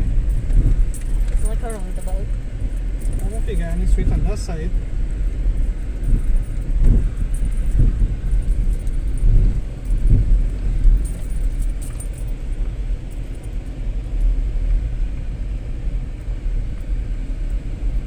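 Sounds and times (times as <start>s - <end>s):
car engine and road rumble: 0.0s - 18.0s.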